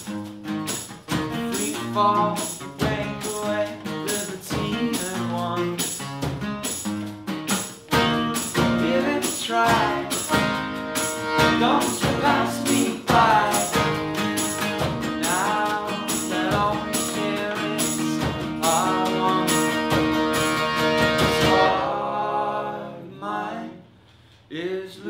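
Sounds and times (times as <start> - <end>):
tambourine beat: 0.0 - 21.8
strummed acoustic guitars: 0.0 - 24.5
several people singing: 8.7 - 10.4, 11.5 - 14.2, 15.2 - 19.9, 21.4 - 23.9
accordion: 9.2 - 22.0.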